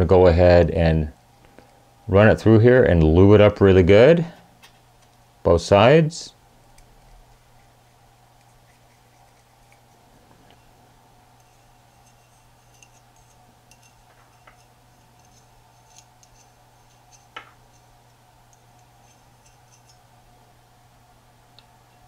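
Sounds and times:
low steady hum: 0:00.0 - 0:22.0.

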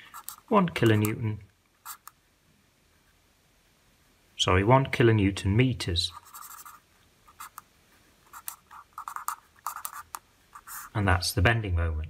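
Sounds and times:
felt-tip pen scratching on paper: 0:00.1 - 0:01.1, 0:01.8 - 0:02.2, 0:06.1 - 0:07.6, 0:08.2 - 0:10.9.

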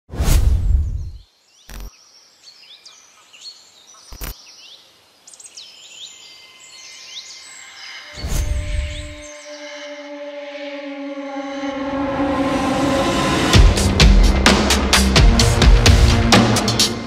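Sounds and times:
birds chirping: 0:00.8 - 0:10.4.

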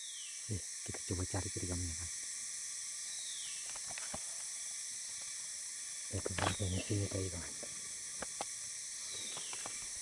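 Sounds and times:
forest insects droning: 0:00.0 - 0:10.0.

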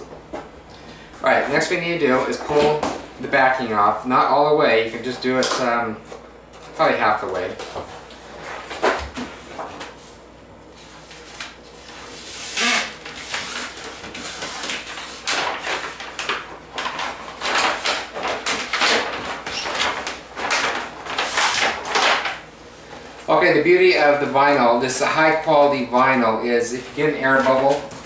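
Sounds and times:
vinyl sheet rustling and crackling: 0:06.6 - 0:28.0.

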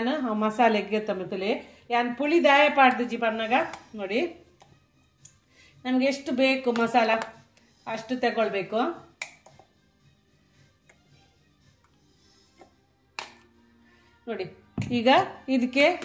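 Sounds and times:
woman speaking: 0:14.3 - 0:16.0.

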